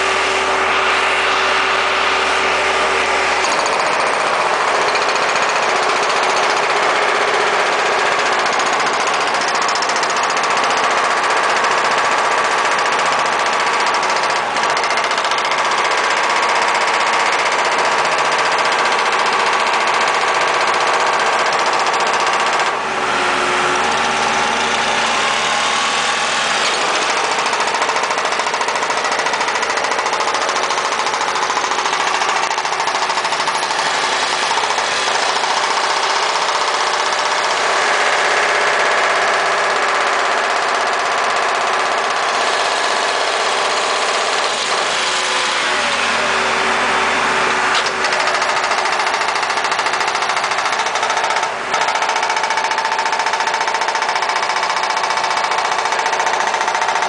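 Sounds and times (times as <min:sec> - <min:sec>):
backhoe diesel engine running: 0:00.0 - 0:57.0.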